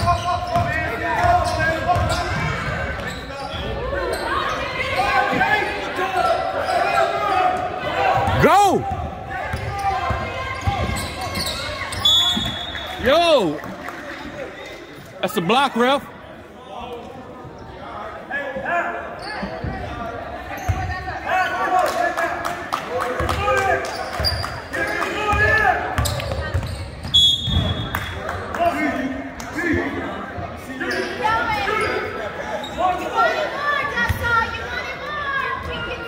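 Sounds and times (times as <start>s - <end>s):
people shouting and talking: 0.0s - 36.0s
whistle blast: 11.9s - 13.0s, 27.1s - 27.9s.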